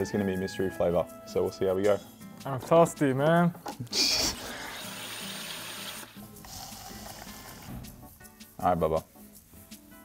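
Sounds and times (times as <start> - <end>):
background music: 0.0 - 10.0
carbonated water fizzing: 4.2 - 7.8.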